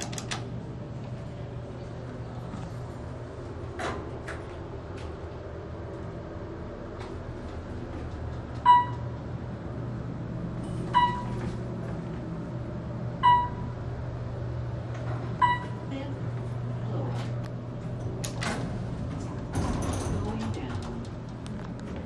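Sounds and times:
elevator hum: 0.0s - 22.0s.

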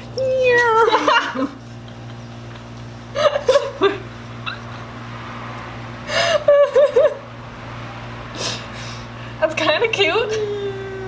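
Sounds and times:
steady low hum: 0.0s - 11.0s
people laughing: 0.9s - 4.0s.

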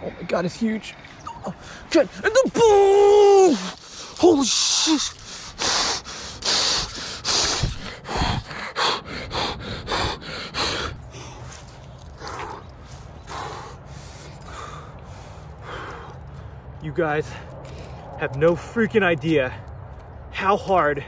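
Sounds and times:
man breathing hard: 3.6s - 18.2s.

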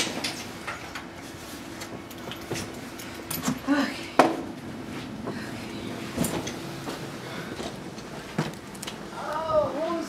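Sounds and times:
luggage being handled: 6.1s - 9.0s.

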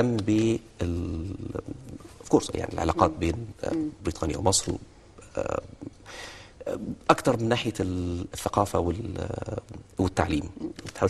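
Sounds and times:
man's guttural hesitation sound: 1.0s - 4.1s
man murmuring a word: 2.8s - 4.0s
breathy intake of breath: 6.0s - 6.6s.

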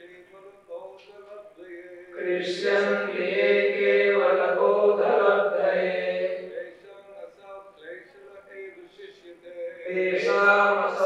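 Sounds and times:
voices chanting in unison: 1.7s - 7.0s, 9.8s - 11.0s.

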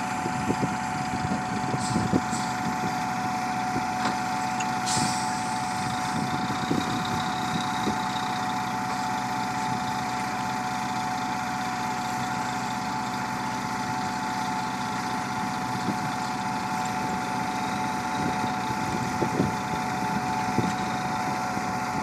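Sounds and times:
paver and truck engines droning: 0.0s - 22.0s.

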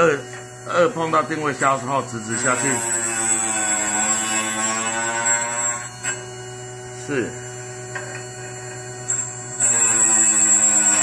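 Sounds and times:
grinding wheel on metal: 0.0s - 6.1s, 7.9s - 11.0s
sharpener motor humming and whining: 0.0s - 11.0s.

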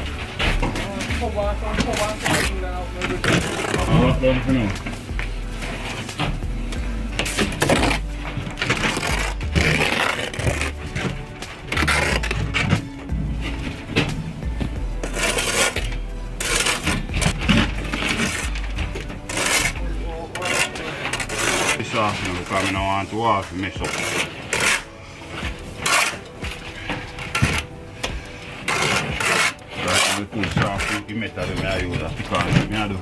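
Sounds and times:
trowel scraping mortar and brick: 0.0s - 14.2s, 15.0s - 33.0s
background music with bass line: 0.0s - 33.0s.

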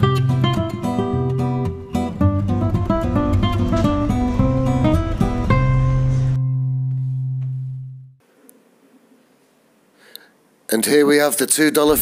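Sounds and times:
acoustic guitar low note ringing: 0.0s - 8.2s
faint room noise: 6.2s - 12.0s.

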